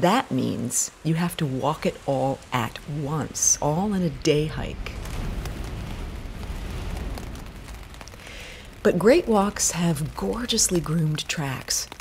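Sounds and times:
outdoor rushing noise with rumble: 0:01.4 - 0:12.0.

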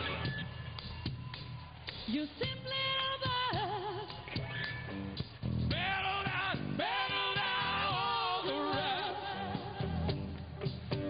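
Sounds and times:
live rock band playing: 0:03.3 - 0:11.0.

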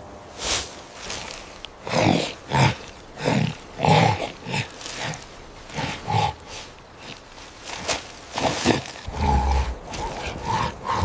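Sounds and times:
gruff ape-like calls: 0:08.3 - 0:11.0.

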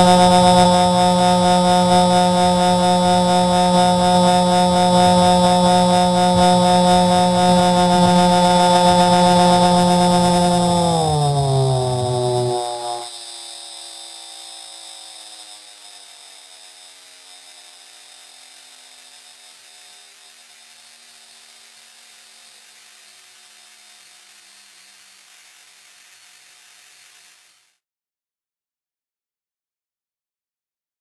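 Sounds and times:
overtone-rich drone sliding down: 0:00.0 - 0:13.1
hiss: 0:11.0 - 0:27.8.

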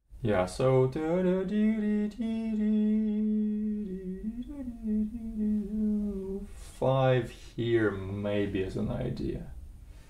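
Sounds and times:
man humming: 0:02.3 - 0:06.6.

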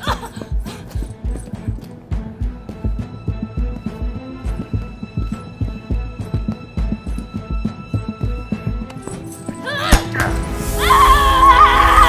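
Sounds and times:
dramatic film music: 0:00.0 - 0:12.0
woman screaming: 0:09.6 - 0:12.0.

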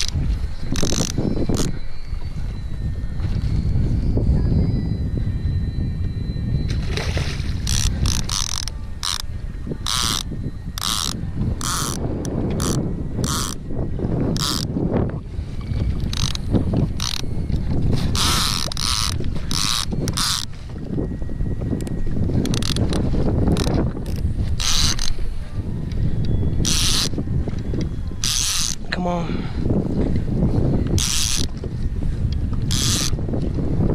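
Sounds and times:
fishing reel ratcheting clicks: 0:00.0 - 0:01.8, 0:07.6 - 0:13.6, 0:14.4 - 0:14.7, 0:16.1 - 0:17.3, 0:18.2 - 0:20.5, 0:21.8 - 0:25.2, 0:26.2 - 0:27.2, 0:27.8 - 0:28.8, 0:30.9 - 0:31.5, 0:32.7 - 0:33.2
wind rumble on microphone: 0:00.0 - 0:33.9.

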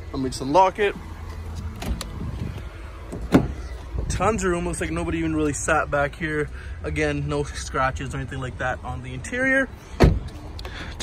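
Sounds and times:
car door latch clunk: 0:01.6 - 0:02.3, 0:03.1 - 0:03.7, 0:10.0 - 0:10.4.

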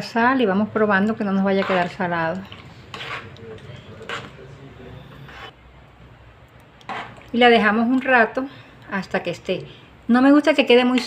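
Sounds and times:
spoon stirring stew in a pot: 0:01.0 - 0:04.4, 0:06.6 - 0:08.1.

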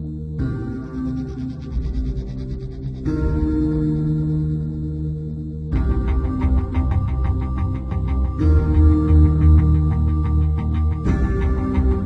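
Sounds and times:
ambient music: 0:00.0 - 0:12.0.

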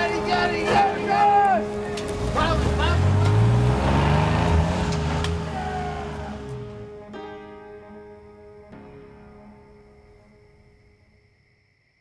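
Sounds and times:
background music: 0:00.0 - 0:11.7
truck engine revving: 0:01.9 - 0:07.0.

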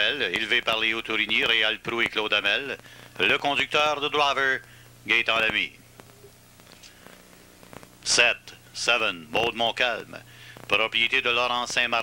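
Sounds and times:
faint low hum: 0:00.0 - 0:12.0
light hiss: 0:00.0 - 0:12.0.

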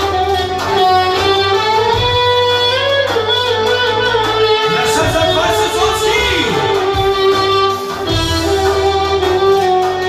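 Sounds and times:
lead instrument melody: 0:00.0 - 0:10.0
steady bass accompaniment: 0:00.0 - 0:10.0.

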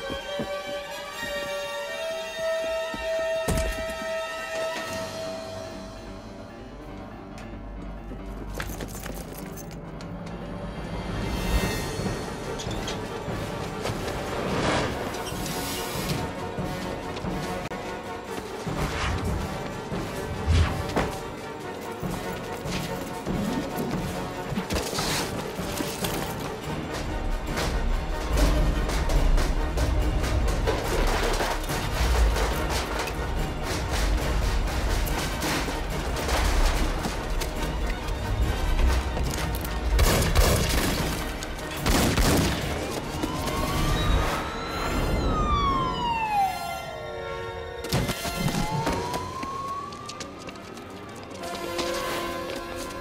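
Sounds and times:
action film score: 0:00.0 - 0:53.0
police siren wailing: 0:42.8 - 0:51.6.

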